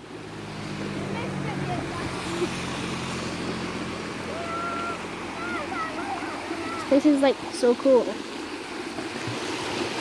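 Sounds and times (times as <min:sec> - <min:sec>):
river rushing over stones: 0:00.0 - 0:10.0.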